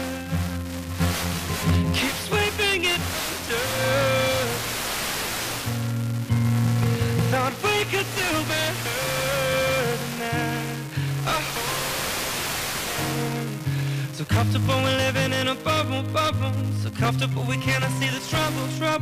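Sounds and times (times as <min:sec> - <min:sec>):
pop song on radio: 0:00.0 - 0:19.0
radio static hiss: 0:00.0 - 0:19.0.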